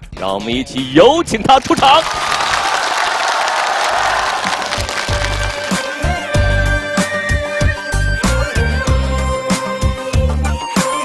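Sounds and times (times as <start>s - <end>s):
audience applauding: 1.6s - 6.3s.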